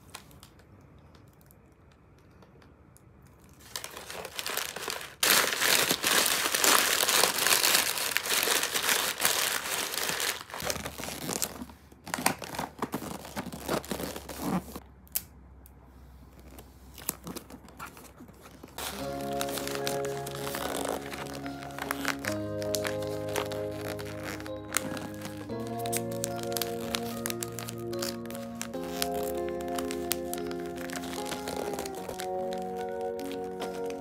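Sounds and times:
wrapping paper crinkling: 0:03.5 - 0:14.8, 0:16.4 - 0:34.0.

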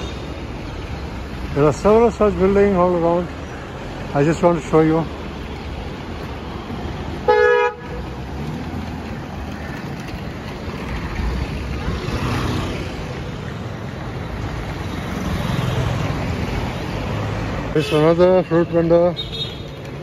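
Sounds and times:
street traffic: 0:00.0 - 0:20.0
vehicle horn honk: 0:07.3 - 0:08.0
car passing close by: 0:10.8 - 0:13.2.

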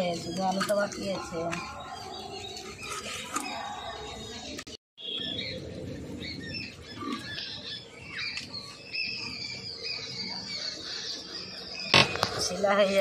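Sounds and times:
low outdoor background: 0:00.0 - 0:13.0
small birds chirping: 0:00.0 - 0:13.0.

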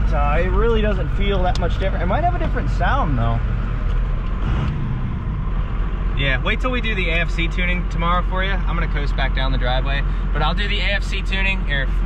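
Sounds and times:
diesel engine running: 0:00.0 - 0:12.0
road noise: 0:00.0 - 0:12.0.

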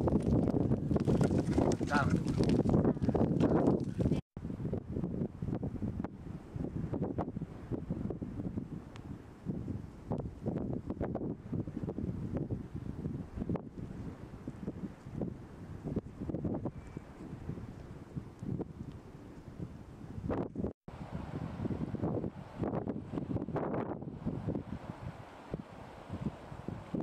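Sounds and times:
gusty wind on microphone: 0:00.0 - 0:27.0.

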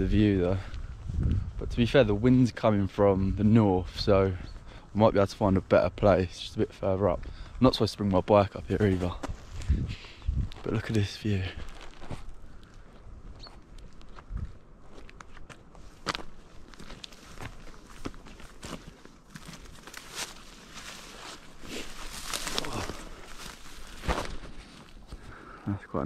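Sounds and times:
footsteps on dirt: 0:08.6 - 0:25.3
rustling: 0:08.8 - 0:25.4.

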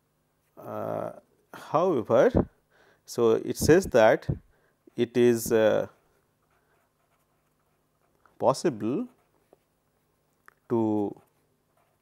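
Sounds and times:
faint low hum: 0:00.0 - 0:12.0
pen scratching on paper: 0:05.5 - 0:08.2, 0:08.8 - 0:09.7, 0:11.1 - 0:12.0.

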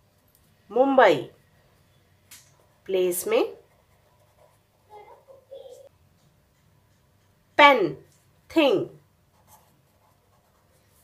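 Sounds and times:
marker pen writing on paper: 0:02.5 - 0:07.5, 0:09.2 - 0:11.0.

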